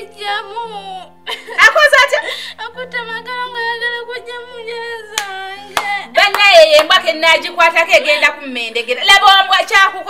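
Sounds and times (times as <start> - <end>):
background music: 0.0 - 10.0
sharp hand claps: 5.2 - 7.0.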